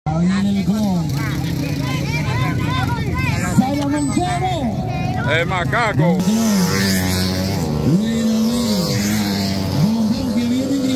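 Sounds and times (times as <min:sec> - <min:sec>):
motorcycle engine revving high: 0:00.3 - 0:10.9.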